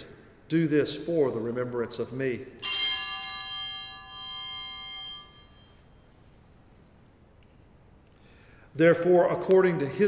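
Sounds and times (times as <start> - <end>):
bell ringing: 2.6 - 5.8.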